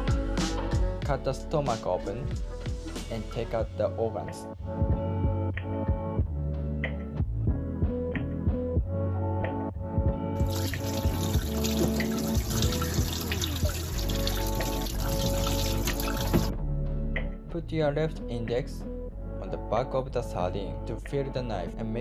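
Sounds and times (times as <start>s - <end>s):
background music: 0.0s - 22.0s
tap running into steel sink: 10.4s - 16.5s.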